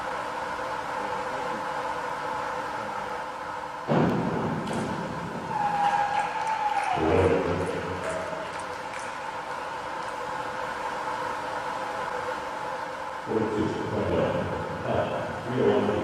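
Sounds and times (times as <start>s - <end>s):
pool hall hum: 0.0s - 16.0s.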